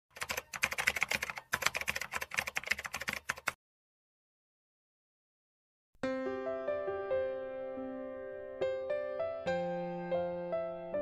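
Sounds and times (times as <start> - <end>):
keyboard typing clicks: 0.1 - 3.6.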